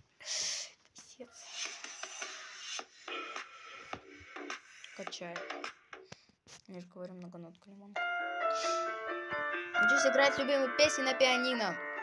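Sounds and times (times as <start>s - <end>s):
quiet intro music through laptop speakers: 1.3s - 6.0s.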